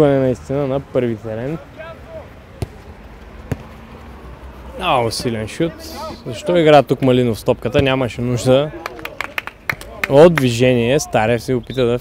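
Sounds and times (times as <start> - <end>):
boot kicking football: 2.6 - 3.7.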